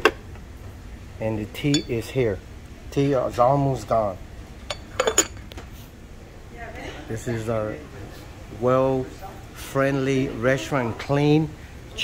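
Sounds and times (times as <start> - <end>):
china and cutlery clinking: 1.7 - 2.0, 4.7 - 5.4.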